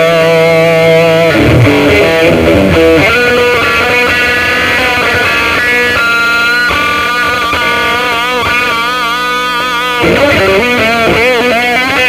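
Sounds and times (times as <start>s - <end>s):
electric guitar blues lead: 0.0s - 12.0s.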